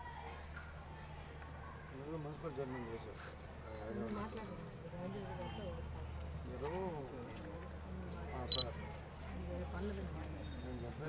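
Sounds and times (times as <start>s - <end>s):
low murmuring voices: 0.0s - 11.0s.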